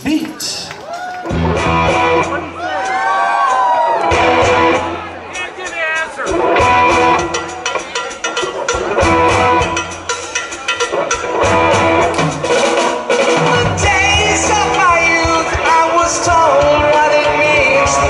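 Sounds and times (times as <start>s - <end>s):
bass guitar: 0.0s - 5.4s, 6.3s - 18.0s
electric guitars: 0.0s - 5.4s, 6.3s - 18.0s
drums: 0.0s - 18.0s.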